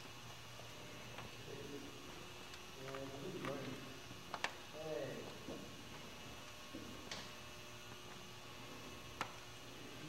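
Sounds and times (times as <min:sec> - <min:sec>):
faint electrical hum and hiss: 0:00.0 - 0:10.0.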